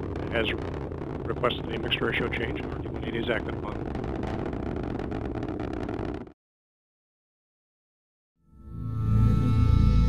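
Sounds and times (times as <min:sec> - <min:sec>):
rocket engine rushing and crackling: 0:00.0 - 0:06.4.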